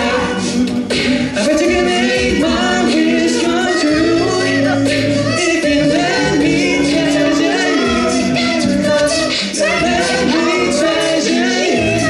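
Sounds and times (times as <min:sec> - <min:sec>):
deep sung bass line: 0:00.0 - 0:12.0
male group singing in harmony: 0:00.0 - 0:12.0
steady beat: 0:00.0 - 0:12.0.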